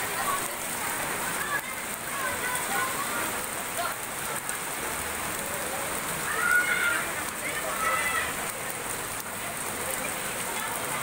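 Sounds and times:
heavy rain on pavement: 0.0 - 11.0.

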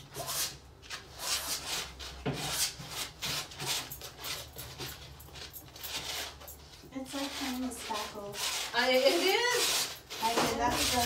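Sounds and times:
palette knife scraping paint: 0.1 - 4.9, 5.7 - 11.0.

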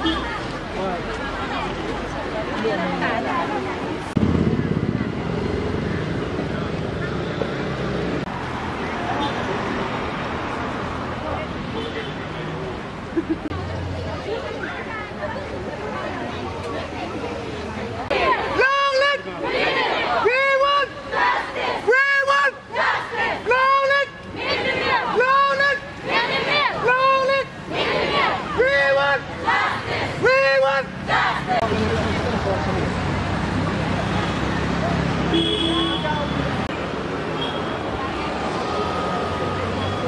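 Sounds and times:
faint crowd voices: 0.0 - 40.0
vehicle engine running: 4.1 - 7.0
crowd chanting in response: 18.0 - 31.7.

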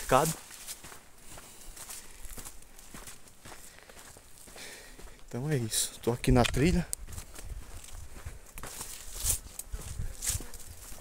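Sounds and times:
leafy branches rustling: 0.0 - 1.0, 8.6 - 11.0
footsteps on dirt trail: 0.0 - 11.0.

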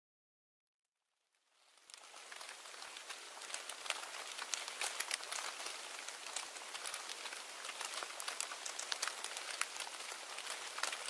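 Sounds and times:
clicks and crackles: 1.6 - 11.0.

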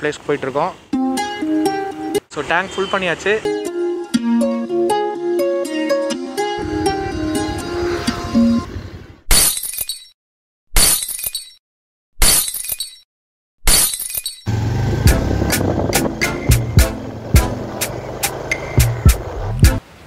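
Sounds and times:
plucked-string background music: 0.9 - 2.3, 3.4 - 8.6, 14.6 - 19.8
music with a steady beat: 15.0 - 17.9, 18.7 - 19.8.

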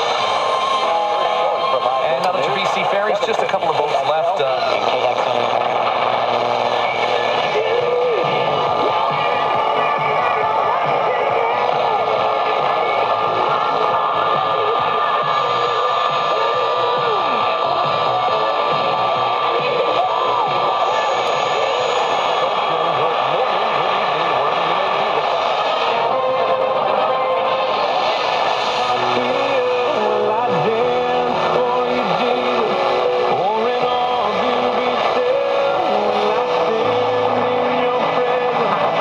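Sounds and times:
garbled radio station audio: 0.0 - 39.0
radio static and hiss: 0.0 - 39.0.

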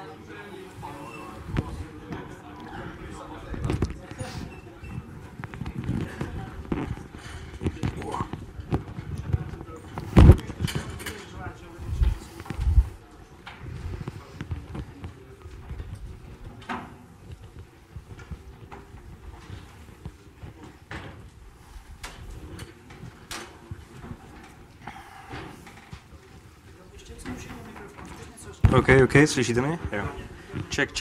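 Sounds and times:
indistinct talk: 0.0 - 31.0.

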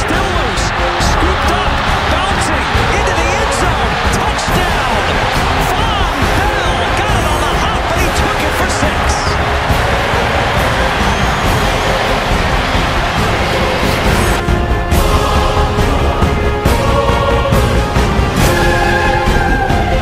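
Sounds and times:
background music: 0.0 - 20.0
stadium crowd cheering: 0.0 - 20.0.

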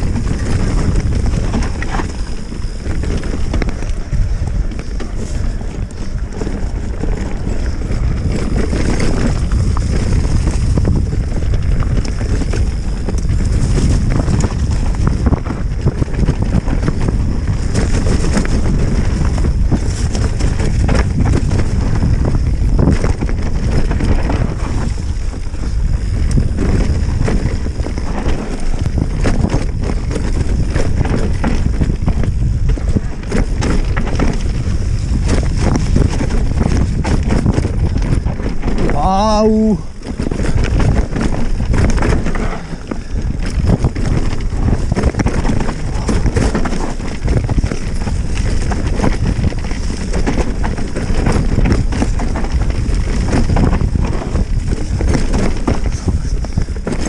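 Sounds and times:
bike rumbling and rattling: 0.0 - 57.0
wind buffeting microphone: 0.0 - 57.0.

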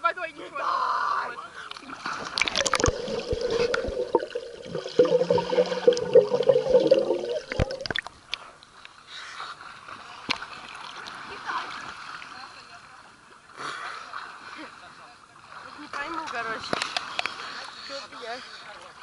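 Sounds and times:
water sloshing and splashing: 1.7 - 8.3.

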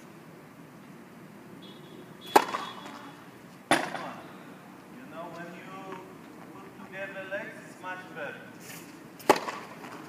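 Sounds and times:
tennis racket hitting ball: 2.3 - 3.0, 9.2 - 10.0.

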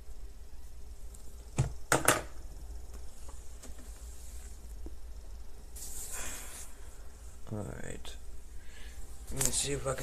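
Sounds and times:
low steady hum: 0.0 - 10.0
person exhaling: 5.8 - 7.1.

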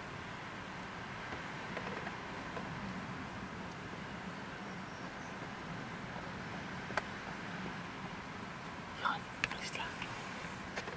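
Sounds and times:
steady background hiss: 0.0 - 10.9
person whispering: 9.0 - 10.2.

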